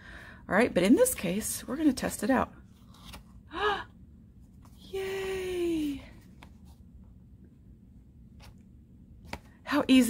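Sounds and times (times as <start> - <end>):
low room hum: 0.0 - 10.0
paper card rustling: 2.6 - 3.4, 6.1 - 6.9.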